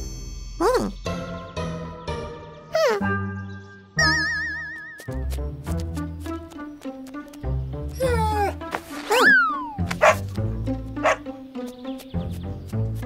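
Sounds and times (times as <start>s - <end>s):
children's background music: 0.0s - 13.0s
cartoon dog barking and yipping: 8.0s - 10.3s, 11.0s - 11.3s.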